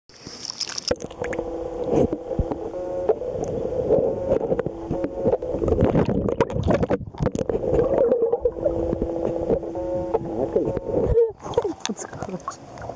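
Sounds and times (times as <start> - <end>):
muffled underwater sloshing: 0.2 - 12.9
steady hum: 0.9 - 12.9.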